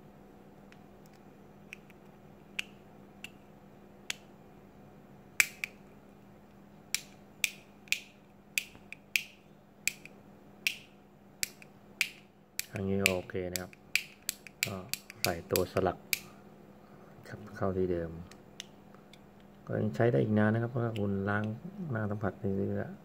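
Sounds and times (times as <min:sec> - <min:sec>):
light switch clicking: 0:04.1 - 0:04.3, 0:05.4 - 0:05.8, 0:06.9 - 0:16.3.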